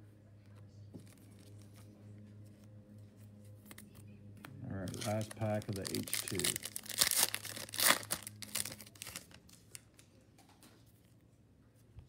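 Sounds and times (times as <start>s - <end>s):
foil wrapper tearing and crinkling: 4.8s - 9.8s.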